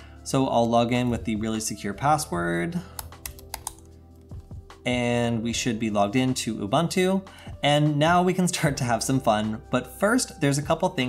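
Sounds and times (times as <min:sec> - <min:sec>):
soft background music: 0:00.0 - 0:11.0
computer keyboard clicks: 0:03.0 - 0:03.9.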